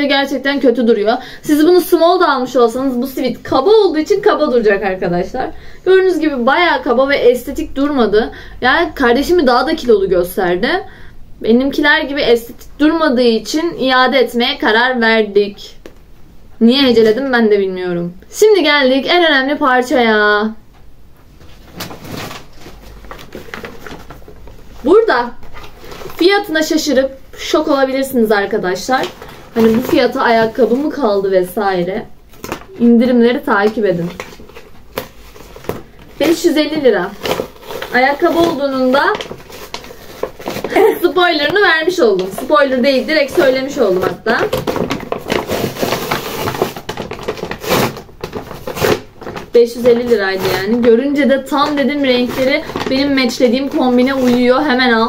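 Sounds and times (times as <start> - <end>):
paper bag rustling and crackling: 21.4 - 26.7, 28.4 - 31.4, 32.3 - 55.0.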